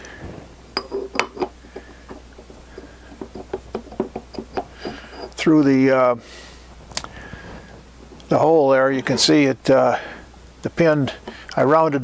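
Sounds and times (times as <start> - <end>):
metal disc clinking on steel shaft: 3.2 - 5.6, 8.7 - 9.5.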